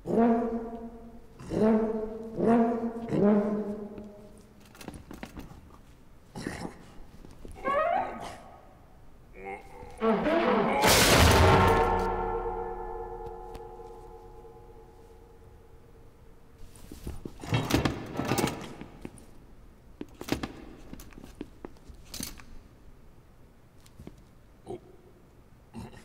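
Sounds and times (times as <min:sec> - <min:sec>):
brass instruments crashing to floor: 0:10.0 - 0:14.5.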